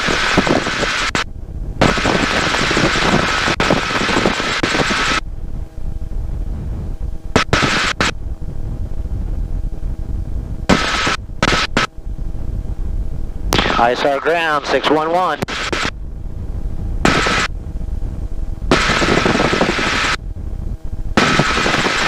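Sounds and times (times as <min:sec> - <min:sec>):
helicopter engine and rotor drone: 0:00.0 - 0:22.0
wind noise: 0:00.0 - 0:22.0.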